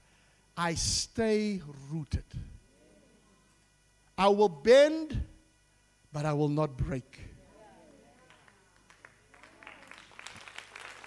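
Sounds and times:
crowd clapping: 8.1s - 11.0s.

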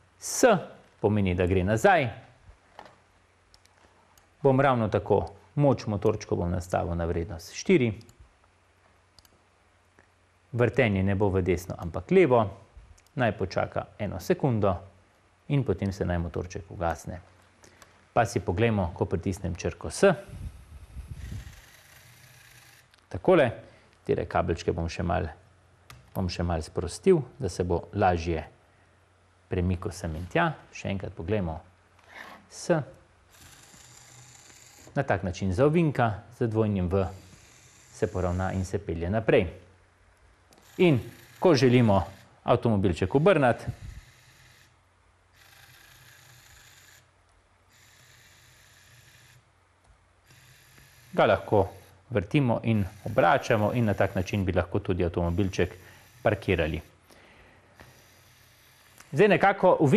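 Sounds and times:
small electric motor whirring: 20.2s - 23.0s, 33.3s - 35.0s, 36.9s - 38.8s, 40.5s - 42.5s, 43.1s - 49.5s, 50.2s - 57.1s, 57.8s - 59.4s.

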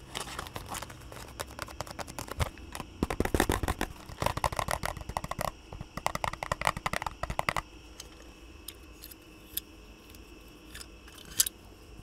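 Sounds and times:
plastic bricks clicking: 0.4s - 8.1s.

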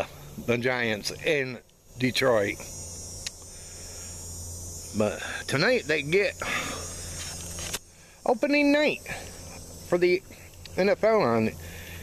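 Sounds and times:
insects chirping: 0.0s - 12.0s
low steady hum: 0.0s - 12.0s.

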